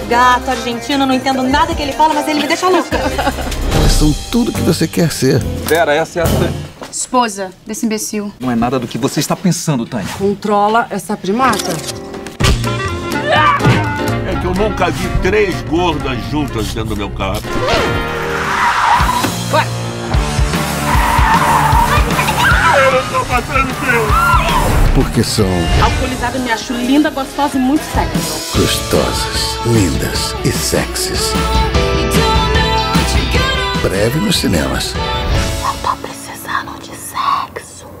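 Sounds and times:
music with thumping beat: 12.4s - 16.6s
car tyres squealing: 17.6s - 19.6s, 20.7s - 24.8s
woman whispering: 35.6s - 38.0s.

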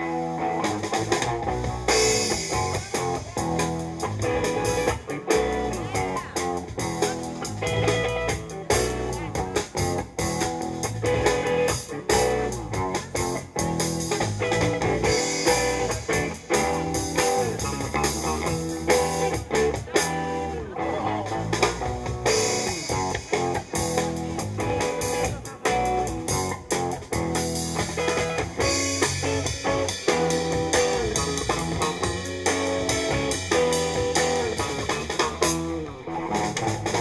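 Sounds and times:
drum kit: 0.0s - 37.0s
electric bass: 0.0s - 37.0s
electric guitar lines: 0.0s - 37.0s.

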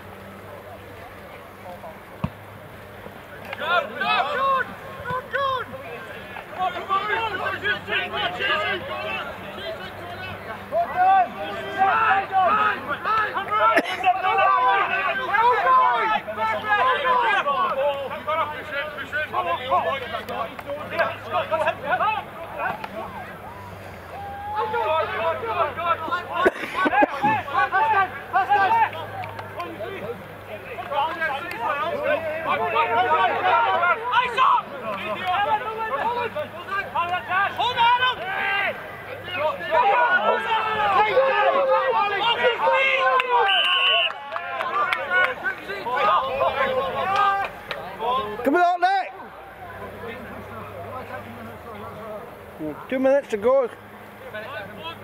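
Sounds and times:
players shouting: 0.0s - 55.0s
spectators talking: 0.0s - 55.0s.

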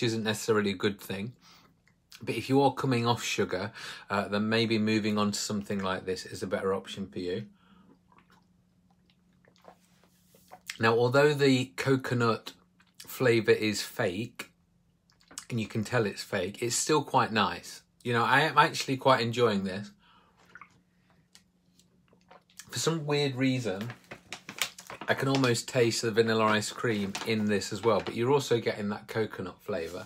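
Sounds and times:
swallowing and mouth clicks: 7.8s - 10.8s, 15.0s - 15.5s, 20.4s - 22.7s.

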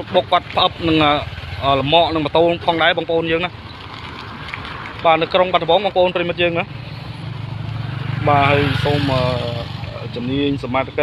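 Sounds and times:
people talking: 0.0s - 3.5s, 5.0s - 6.7s, 8.2s - 11.0s
motorcycle engine running: 0.1s - 11.0s.

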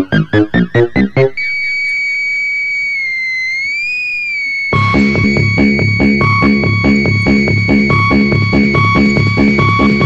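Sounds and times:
held high synthesizer tone: 0.0s - 10.0s.

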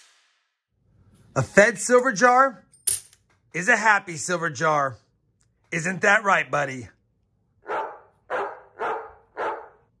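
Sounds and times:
dog barking: 7.6s - 9.9s.

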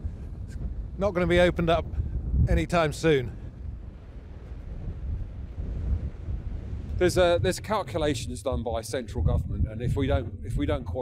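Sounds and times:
waves breaking: 0.0s - 7.6s
wind buffeting microphone: 0.0s - 11.0s.

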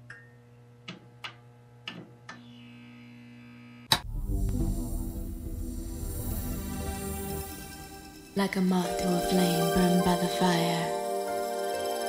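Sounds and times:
loud hit: 3.9s - 8.4s.

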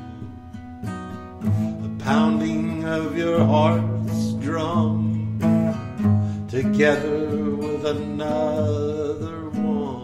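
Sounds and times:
acoustic guitar: 0.0s - 10.0s
person singing: 6.5s - 10.0s.

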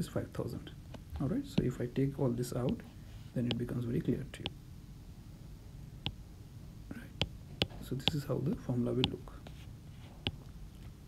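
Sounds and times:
faint breath: 2.9s - 3.4s
stylus tapping on glass screen: 7.2s - 9.2s.

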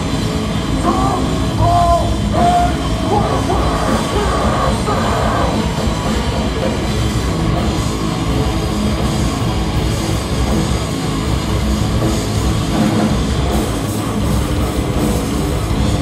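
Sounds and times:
punk band playing live: 0.0s - 16.0s.

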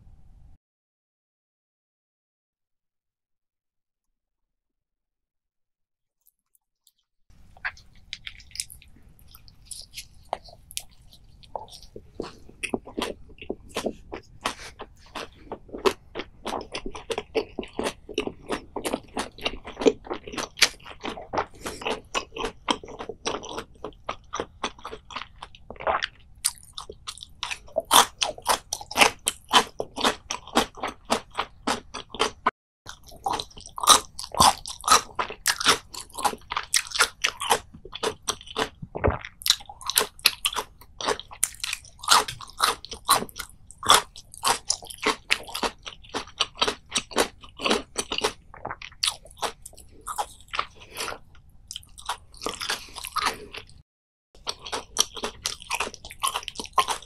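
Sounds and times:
crunching and chewing crisp food: 6.3s - 53.8s, 54.4s - 57.0s.

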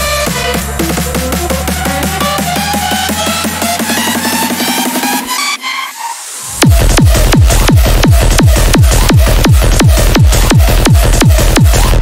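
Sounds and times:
bright dense synths: 0.0s - 12.0s
happy hardcore dance music: 0.0s - 12.0s
hard kick drum: 6.6s - 12.0s.

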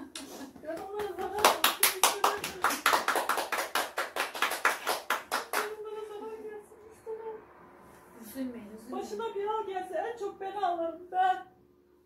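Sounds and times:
hands clapping rhythmically: 0.0s - 5.8s.

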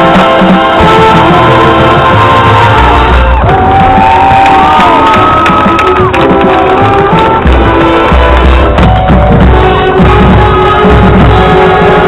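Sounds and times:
marching band playing: 0.0s - 12.0s
crowd cheering and whooping: 2.6s - 7.3s.

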